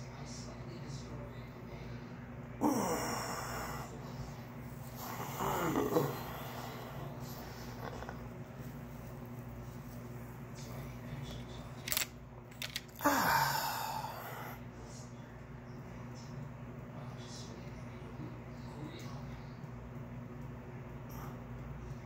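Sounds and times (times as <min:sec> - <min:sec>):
man groaning in pain: 0:02.6 - 0:03.9, 0:13.0 - 0:14.6.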